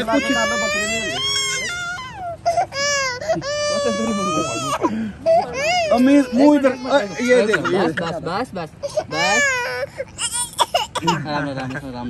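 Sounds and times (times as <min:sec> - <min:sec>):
infant crying: 0:00.0 - 0:11.4.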